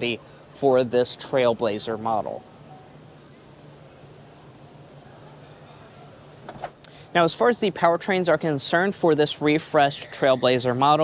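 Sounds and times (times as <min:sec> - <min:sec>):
faint haze of noise: 0:00.0 - 0:11.0.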